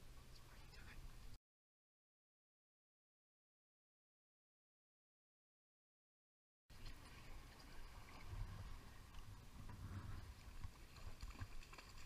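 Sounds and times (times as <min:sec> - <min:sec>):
boat low rumble: 0:00.0 - 0:01.4, 0:06.7 - 0:12.0.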